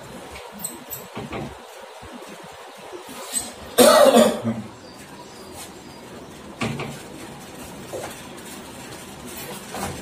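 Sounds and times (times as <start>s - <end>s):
man coughing: 3.8s - 4.7s.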